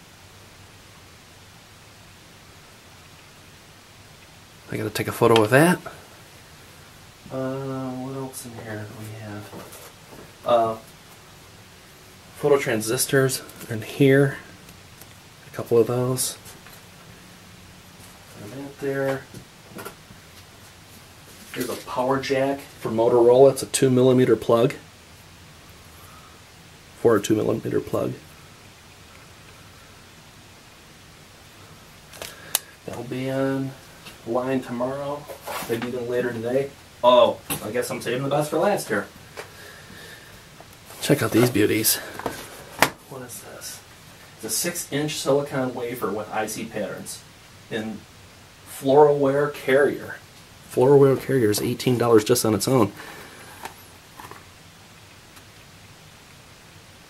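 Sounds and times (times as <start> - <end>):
room hiss: 0.0 - 57.0.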